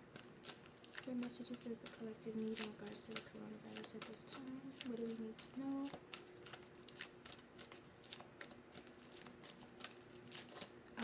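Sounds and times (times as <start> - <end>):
cards being shuffled by hand: 0.0 - 11.0.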